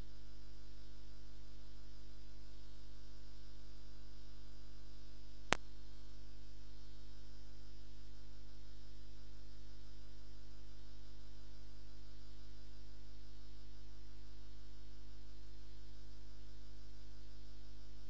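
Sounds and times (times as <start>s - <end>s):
electrical mains hum: 0.0s - 18.0s.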